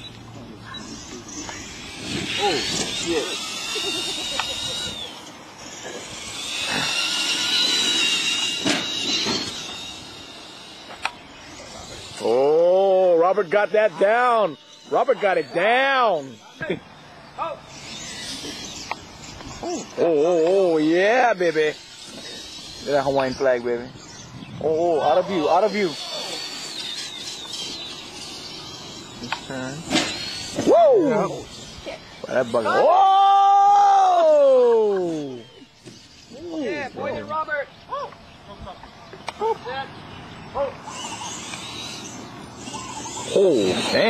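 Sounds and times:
electric motors whining: 0:00.0 - 0:44.0.

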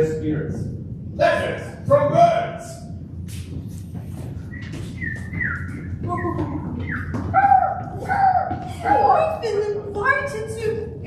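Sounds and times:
people whistling bird chirps: 0:04.4 - 0:07.7.

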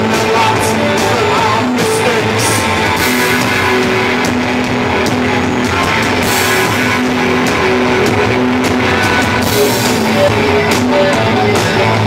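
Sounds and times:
drum and cymbal hits: 0:00.0 - 0:12.0
electric guitar droning: 0:00.0 - 0:12.0
live rock band playing: 0:00.0 - 0:12.0.

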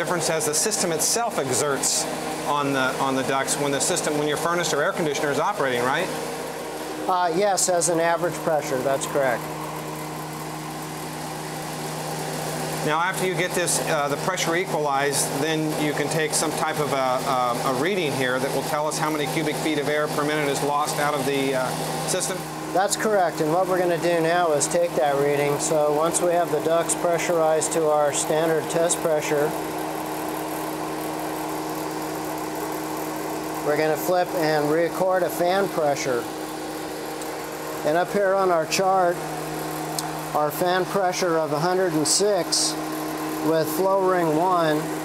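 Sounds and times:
fan humming steadily: 0:00.0 - 0:45.0.

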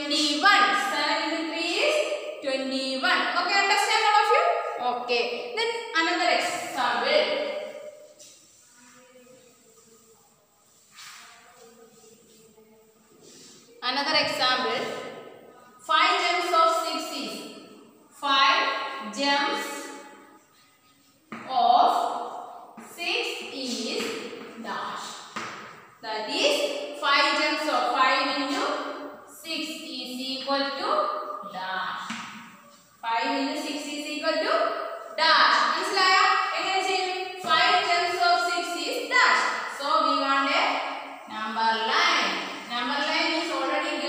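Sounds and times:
woman's voice: 0:00.0 - 0:07.4, 0:13.8 - 0:15.0, 0:15.8 - 0:17.5, 0:18.2 - 0:19.9, 0:22.8 - 0:25.2, 0:26.0 - 0:32.2, 0:33.0 - 0:44.0
woman talking: 0:00.0 - 0:07.5, 0:13.8 - 0:15.1, 0:15.8 - 0:17.5, 0:18.2 - 0:19.9, 0:21.3 - 0:22.2, 0:22.8 - 0:25.2, 0:26.0 - 0:32.2, 0:33.0 - 0:44.0.

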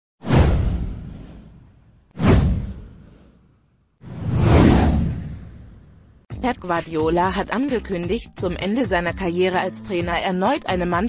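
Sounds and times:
whoosh: 0:00.2 - 0:06.3.

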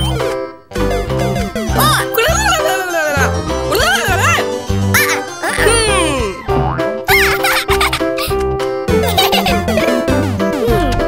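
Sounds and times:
cartoon music with bass beat: 0:00.0 - 0:11.0.

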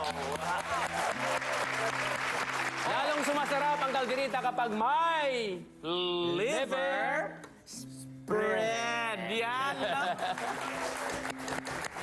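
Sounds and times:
audience applauding: 0:00.0 - 0:04.8, 0:10.1 - 0:12.0
man's voice: 0:02.8 - 0:07.4, 0:08.2 - 0:10.8.

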